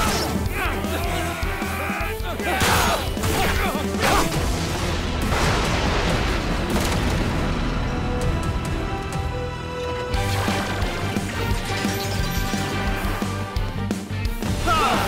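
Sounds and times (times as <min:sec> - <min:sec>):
dramatic action music: 0:00.0 - 0:15.0.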